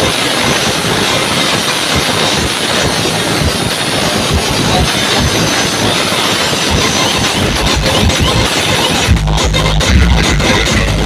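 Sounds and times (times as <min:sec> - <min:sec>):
distorted loud music roar: 0:00.0 - 0:11.0
heavy bass thumps: 0:00.0 - 0:11.0.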